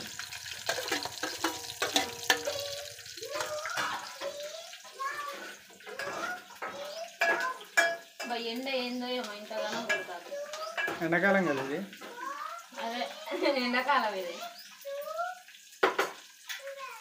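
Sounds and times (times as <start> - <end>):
pot simmering hiss: 0.0 - 17.0
lid and ladle clinking on pot: 0.4 - 4.5, 5.9 - 8.4.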